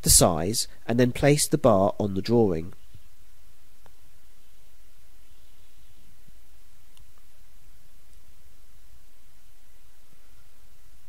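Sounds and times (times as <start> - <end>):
faint even hiss: 0.0 - 11.0.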